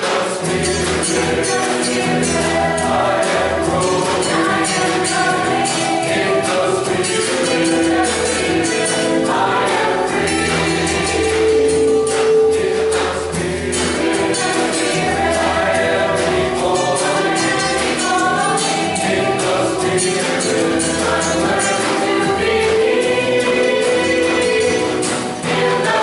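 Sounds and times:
choir singing gospel: 0:00.0 - 0:26.0
light percussion beat: 0:00.0 - 0:26.0.

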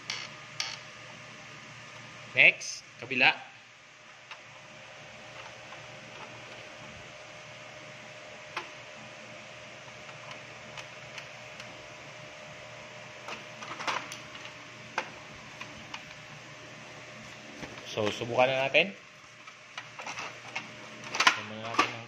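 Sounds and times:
low machine hum: 0:00.0 - 0:22.0.

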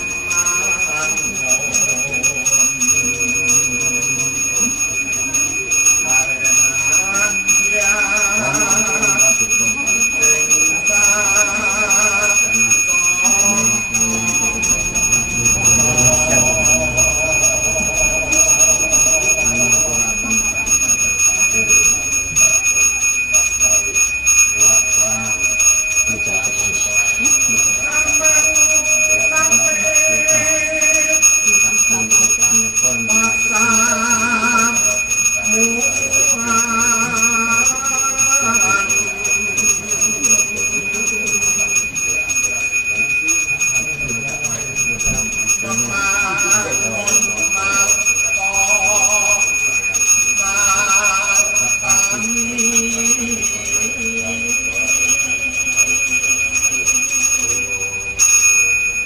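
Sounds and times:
person chanting melodic prayers: 0:00.0 - 0:58.2
hand bell ringing: 0:00.0 - 0:59.0.

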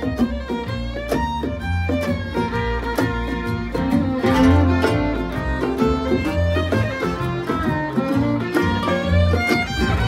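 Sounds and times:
bluegrass band playing: 0:00.0 - 0:10.0
fiddle lead: 0:00.0 - 0:10.0.

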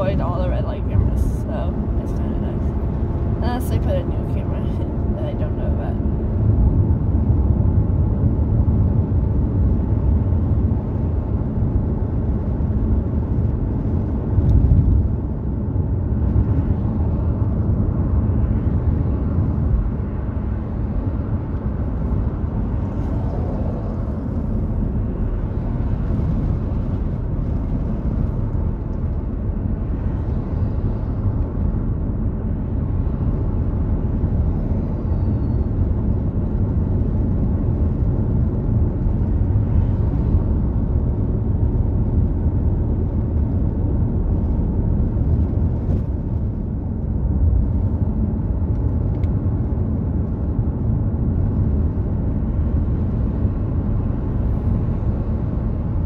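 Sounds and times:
car cabin road rumble: 0:00.0 - 0:56.0.

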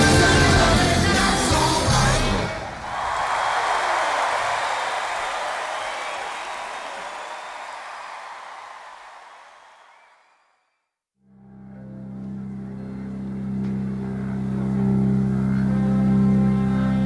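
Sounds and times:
audience applauding: 0:02.4 - 0:10.6.

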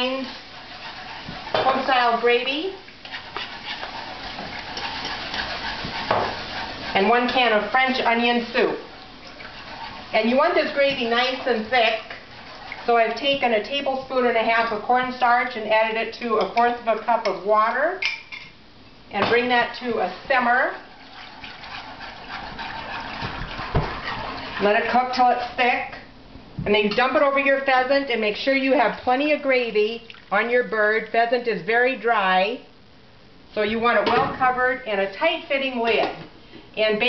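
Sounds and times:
utensil scraping a skillet: 0:00.0 - 0:17.4, 0:20.2 - 0:25.8
sauce sizzling: 0:00.0 - 0:17.5, 0:18.2 - 0:26.5
gravy bubbling while stirred: 0:00.0 - 0:18.3, 0:19.6 - 0:28.0, 0:29.8 - 0:31.2.

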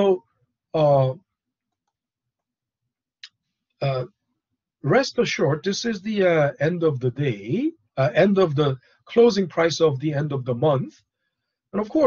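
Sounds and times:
man's voice: 0:00.8 - 0:01.2, 0:03.8 - 0:04.0, 0:04.8 - 0:10.9, 0:11.8 - 0:12.0.

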